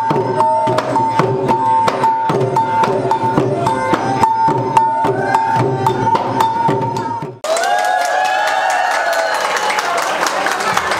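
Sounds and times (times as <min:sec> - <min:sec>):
held high tone: 0:00.0 - 0:07.4
drums beating a rhythm: 0:00.0 - 0:07.5
crowd shouting and cheering: 0:02.8 - 0:10.9
people clapping: 0:07.4 - 0:10.9.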